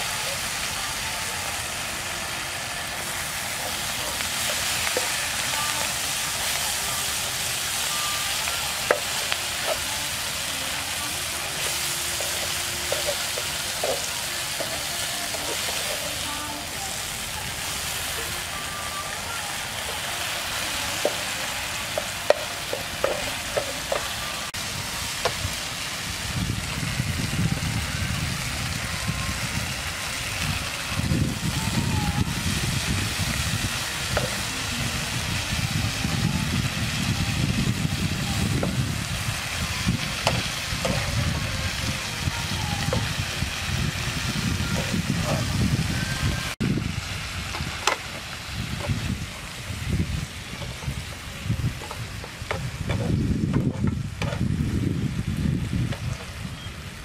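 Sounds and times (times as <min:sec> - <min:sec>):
food sizzling in oil: 0:00.0 - 0:57.0
spatula scraping a pan: 0:19.8 - 0:25.4.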